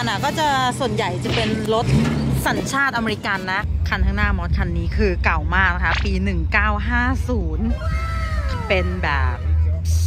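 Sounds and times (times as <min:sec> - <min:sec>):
woman talking: 0:00.0 - 0:07.8, 0:08.4 - 0:10.0
background music: 0:00.0 - 0:10.0.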